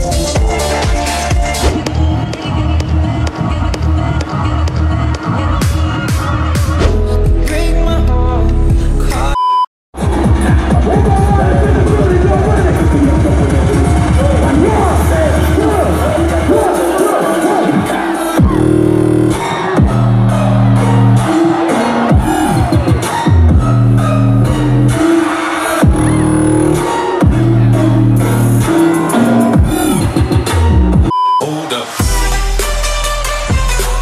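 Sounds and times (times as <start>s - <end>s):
bass-heavy electronic dance music: 0.0s - 34.0s
crowd: 0.0s - 34.0s
short single-pitched beep: 9.4s - 9.7s, 31.1s - 31.6s.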